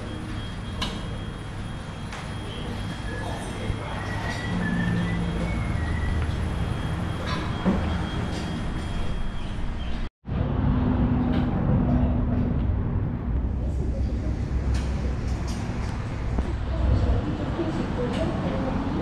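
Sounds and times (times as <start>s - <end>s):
diesel engine running: 0.0s - 19.0s
workshop background noise: 0.0s - 19.0s.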